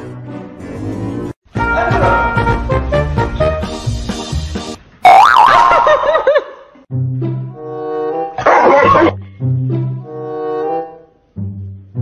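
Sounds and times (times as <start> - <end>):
music: 0.0 - 4.9, 6.9 - 12.0.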